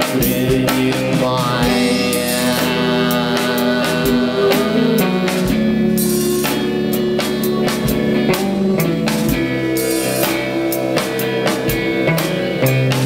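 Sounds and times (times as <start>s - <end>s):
drum and cymbal hits: 0.0s - 13.0s
rock band guitar: 0.0s - 13.0s.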